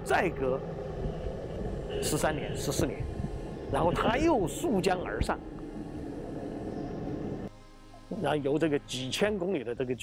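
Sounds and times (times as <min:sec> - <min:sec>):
low sustained background music: 0:00.0 - 0:10.0.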